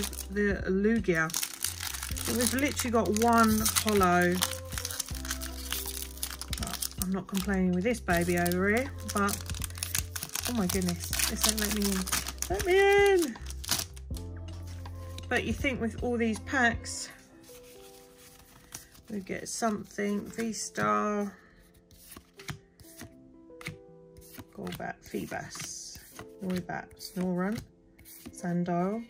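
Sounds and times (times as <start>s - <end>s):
foil wrapper crinkling: 0.0s - 0.3s, 1.2s - 14.2s
background music with held notes: 0.0s - 29.0s.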